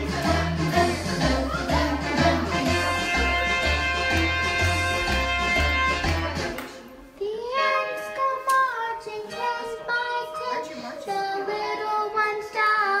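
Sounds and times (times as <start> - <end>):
children singing: 0.0 - 3.5, 6.1 - 13.0.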